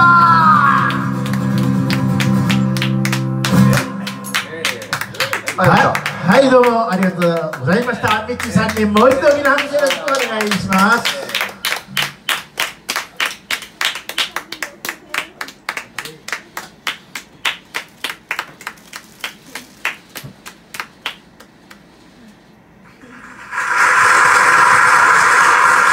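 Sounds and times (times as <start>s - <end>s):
audience clapping: 0.4s - 22.1s, 23.2s - 25.9s
loud steady hiss: 22.9s - 25.9s.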